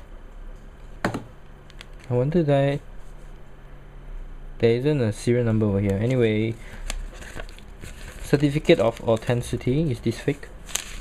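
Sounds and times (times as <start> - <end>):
paper rustle: 6.0 - 11.0.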